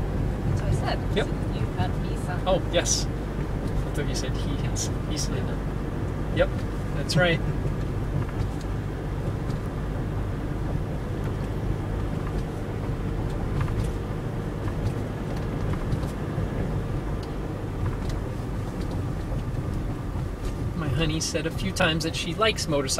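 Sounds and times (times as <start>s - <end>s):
car engine and road noise: 0.0s - 22.9s.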